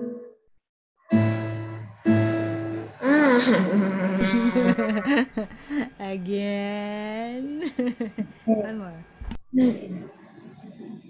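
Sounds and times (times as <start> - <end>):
acoustic guitar note plucked: 1.1 - 3.0
person laughing and exclaiming: 4.2 - 5.5.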